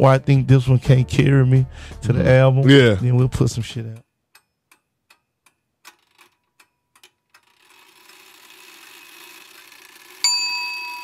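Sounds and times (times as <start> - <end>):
light ticking: 3.9 - 7.8
loud bell-like ding: 10.3 - 11.0.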